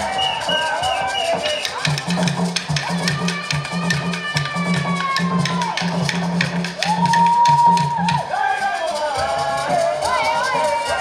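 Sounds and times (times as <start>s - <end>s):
hand drums beating: 0.0s - 11.0s
rattles shaken: 0.0s - 11.0s.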